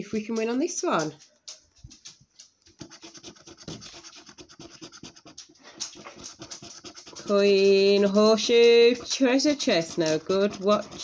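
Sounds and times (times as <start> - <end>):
coin scratching scratchcard: 2.8 - 11.0.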